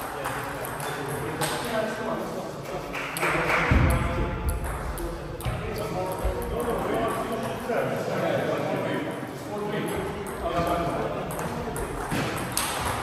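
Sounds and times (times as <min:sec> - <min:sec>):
people talking: 0:00.0 - 0:12.9.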